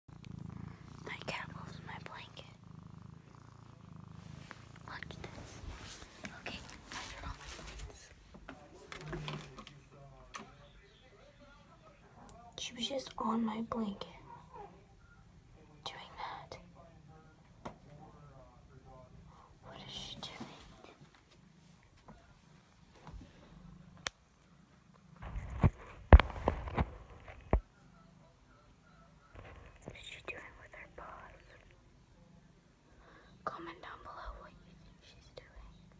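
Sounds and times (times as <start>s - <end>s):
cat purring: 0.1s - 35.9s
person whispering: 1.0s - 2.6s, 4.8s - 8.2s, 15.8s - 16.7s, 19.3s - 21.0s, 29.8s - 31.7s, 33.4s - 35.8s.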